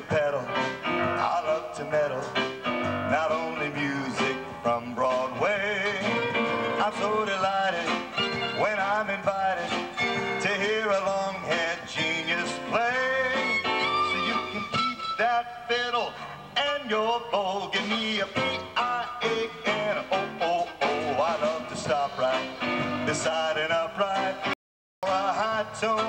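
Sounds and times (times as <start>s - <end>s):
electric keyboard: 0.0s - 16.5s, 17.1s - 24.5s
small live band playing: 0.0s - 26.0s.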